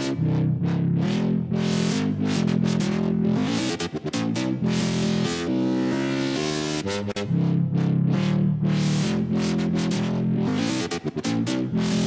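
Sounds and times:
dubstep electronic track: 0.0 - 12.0
synth bass with filter sweeps: 0.0 - 12.0.

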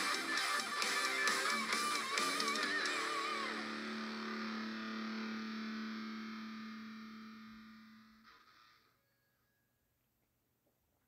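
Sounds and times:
distorted electric guitar chord: 0.0 - 8.8.

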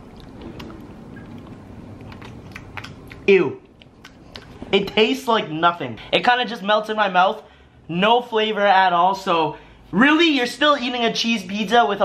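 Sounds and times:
faint mouth clicks: 0.2 - 4.6.

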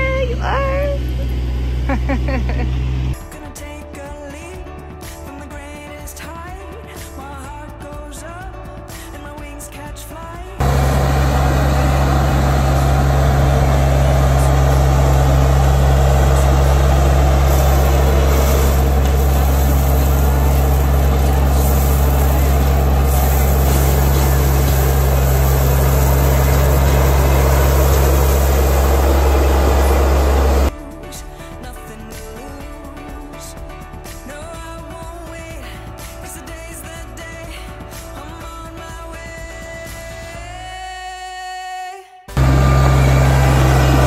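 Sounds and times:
tractor diesel engine running: 0.0 - 3.2, 10.6 - 30.7, 42.4 - 44.0
gravel rattling as it spills: 10.6 - 30.7.

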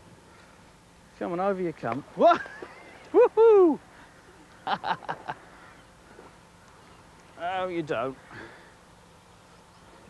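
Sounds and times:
man laughing: 2.2 - 3.8, 4.6 - 5.4.

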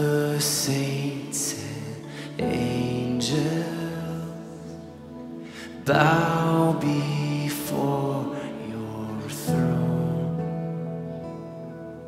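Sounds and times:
worship band playing slow song: 0.0 - 11.9.

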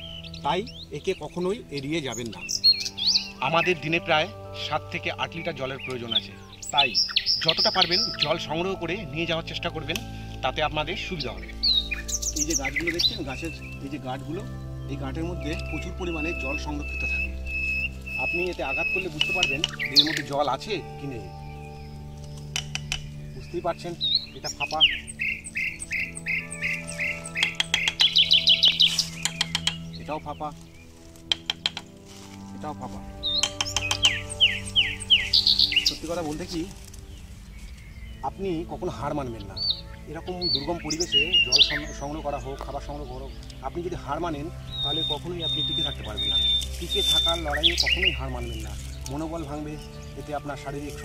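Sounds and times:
bird chirping: 0.0 - 51.0
knife tapping bamboo: 19.1 - 20.3, 22.5 - 23.1, 27.4 - 28.3, 29.2 - 29.8, 31.3 - 31.9, 33.4 - 34.2.

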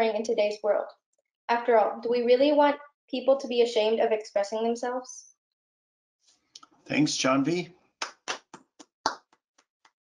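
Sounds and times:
hand claps: 8.0 - 10.0.

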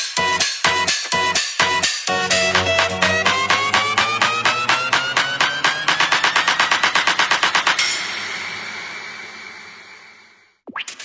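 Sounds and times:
electronic dance music: 0.0 - 8.8
fast drum roll: 2.1 - 8.4.

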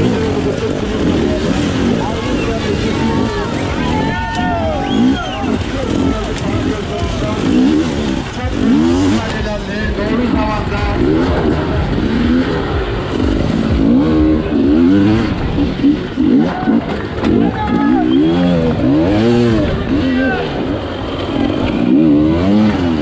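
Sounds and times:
motorcycle engine revving hard: 0.0 - 23.0.

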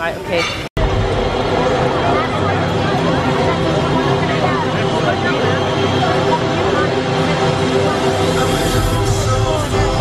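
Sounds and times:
crowd chatter in a hall: 0.0 - 10.0
steady low tones: 0.8 - 10.0.

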